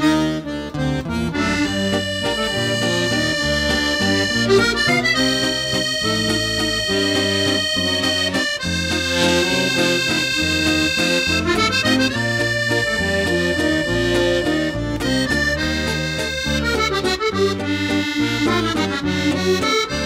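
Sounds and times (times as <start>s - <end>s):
accordion music: 0.0s - 20.0s.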